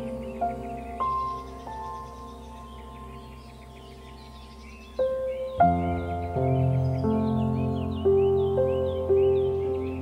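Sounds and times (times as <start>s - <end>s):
ambient music sustained chord: 0.0s - 10.0s
birdsong chirps: 0.0s - 10.0s.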